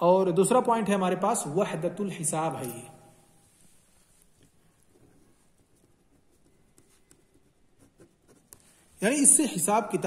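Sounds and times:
pen scratching on paper: 4.9 - 8.8.

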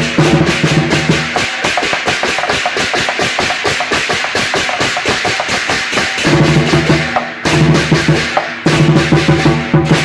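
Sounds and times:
cymbals and gongs clashing: 0.0 - 10.0.

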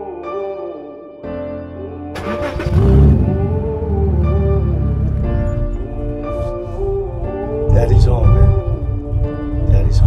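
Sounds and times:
background music: 0.0 - 10.0
car engine starting: 2.2 - 10.0.

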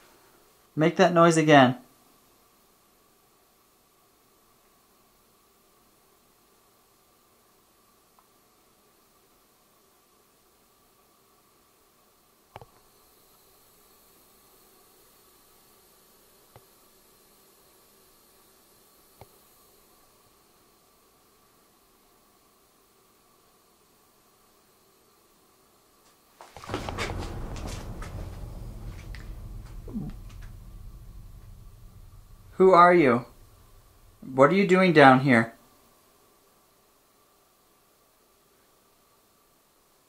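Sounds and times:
low handling rumble: 26.6 - 35.0.

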